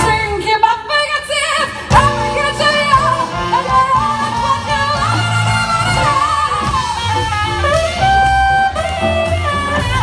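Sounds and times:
jazz band playing: 0.0s - 10.0s.

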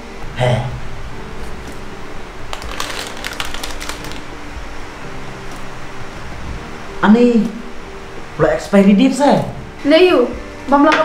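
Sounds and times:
soft background music: 0.0s - 11.0s
plastic packet crinkling: 2.5s - 4.4s.

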